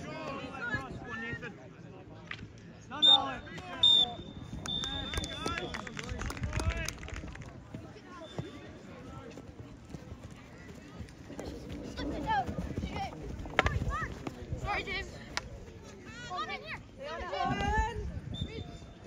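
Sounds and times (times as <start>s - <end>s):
voices of players and spectators: 0.0s - 19.0s
referee's whistle blasts: 3.0s - 5.8s.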